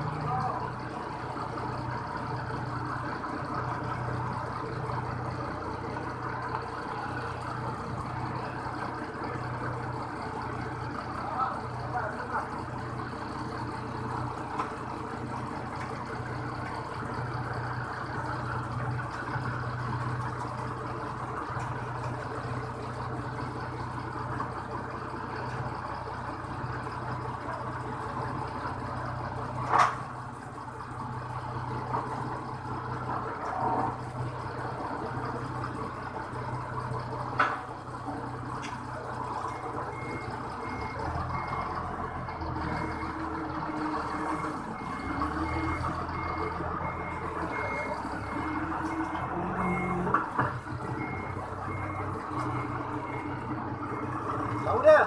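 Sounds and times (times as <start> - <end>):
forklift engine idling: 0.0 - 55.0
reversing alarm beeping: 39.4 - 41.9, 42.6 - 50.2, 50.8 - 55.0.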